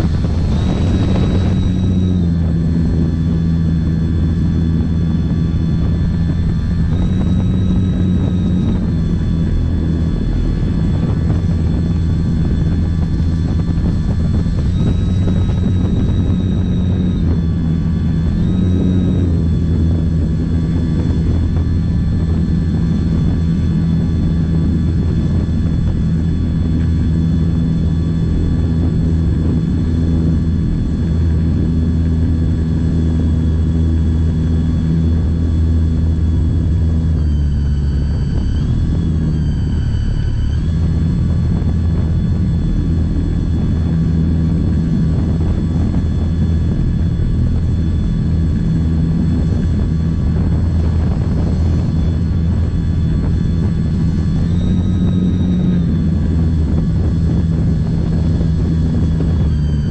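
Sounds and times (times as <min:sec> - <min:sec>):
model aeroplane motor whining: 0:00.0 - 0:59.9.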